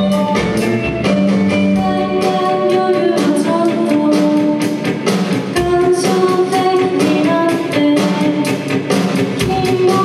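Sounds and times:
bass: 0.0 - 10.0
guitar: 0.0 - 10.0.

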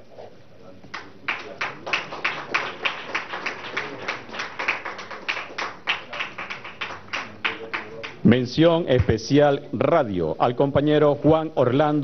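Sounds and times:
audience clapping in time: 0.9 - 8.3.

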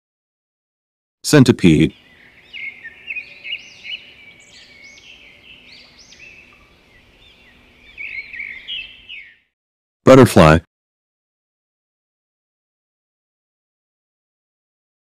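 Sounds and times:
birds chirping: 1.3 - 9.6.

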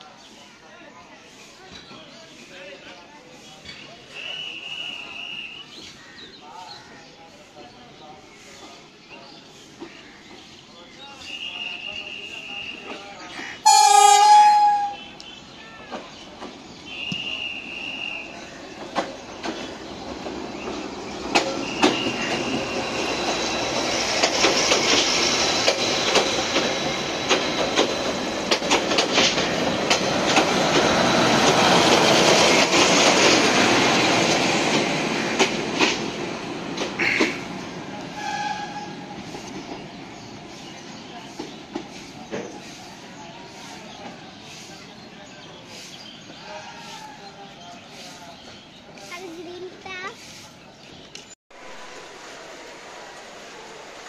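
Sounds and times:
train rail noise: 0.0 - 54.0
train horn blast: 13.6 - 15.1, 38.1 - 39.0
high squealing tone: 13.7 - 15.0.

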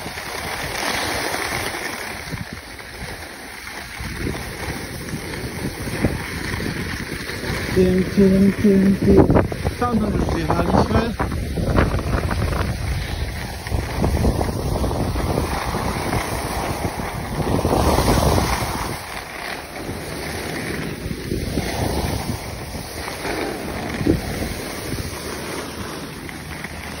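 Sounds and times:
skis hissing over snow: 0.0 - 27.0
wind buffeting microphone: 0.0 - 27.0.

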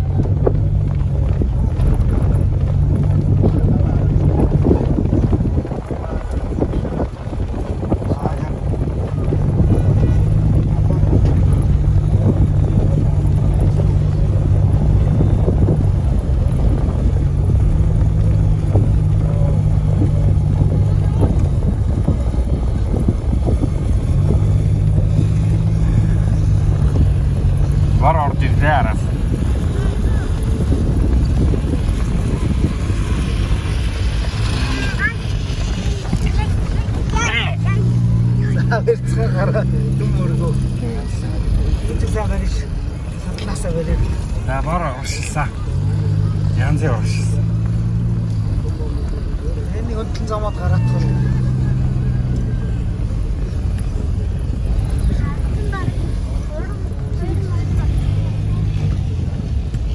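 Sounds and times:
vehicle engine on rough ground: 0.0 - 59.9
wind buffeting through window: 0.0 - 59.9.

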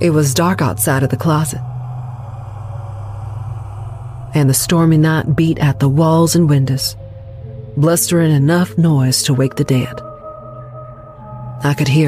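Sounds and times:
low background drone: 0.0 - 12.0.

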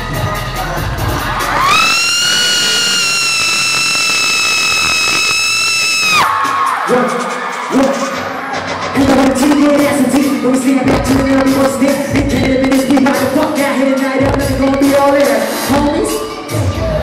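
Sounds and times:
concert backing track beat: 0.0 - 17.0
high-pitched scream: 1.6 - 6.8.

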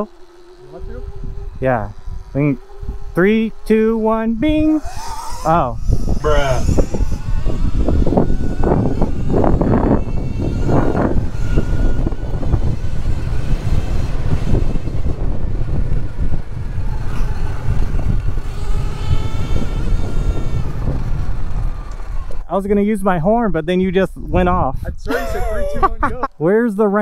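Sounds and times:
faint electric motor whine: 0.0 - 26.2
wind rushing over microphone: 0.0 - 26.4.

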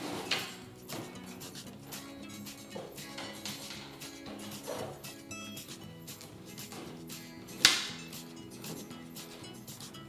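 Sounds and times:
soft background music: 0.0 - 10.0
rope snapping tight: 7.6 - 8.0.

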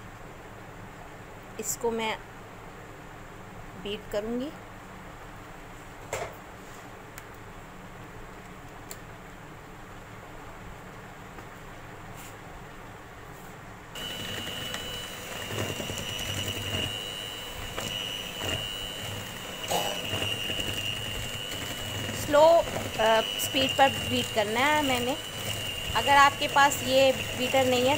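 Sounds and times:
electric hand mixer whining: 14.0 - 27.9.

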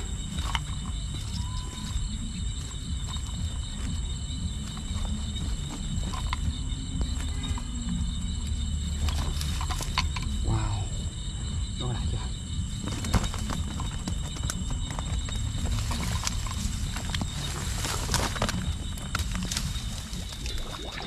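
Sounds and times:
night insects chirring: 0.0 - 21.0.

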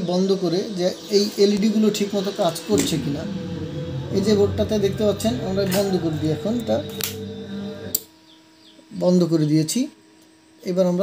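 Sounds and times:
song with singing voice through speaker: 2.6 - 8.0.

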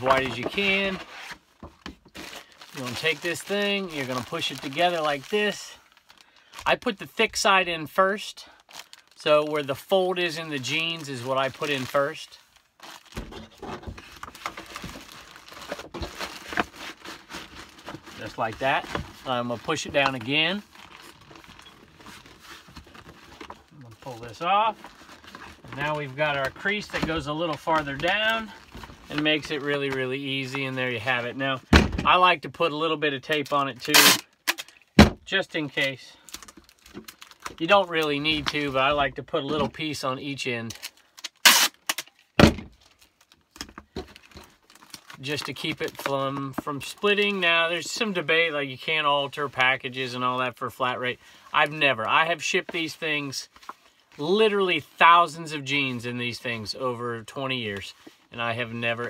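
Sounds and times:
plastic crinkling against paperboard: 0.0 - 7.3, 8.7 - 32.4.

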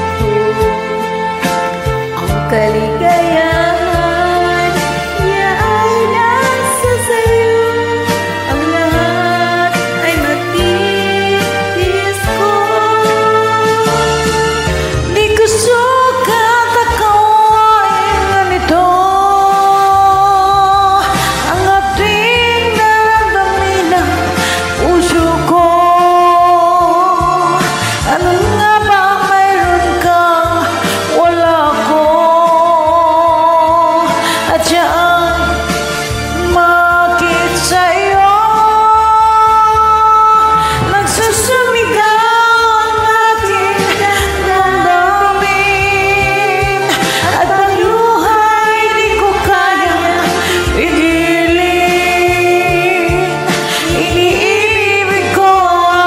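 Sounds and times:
karaoke backing track: 0.0 - 56.0
woman singing a ballad: 0.0 - 56.0.

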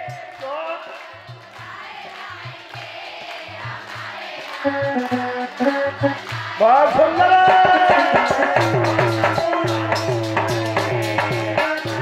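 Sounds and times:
crowd singing devotional music: 0.0 - 12.0
steady drum beat: 0.0 - 12.0
held instrumental notes: 4.6 - 12.0.

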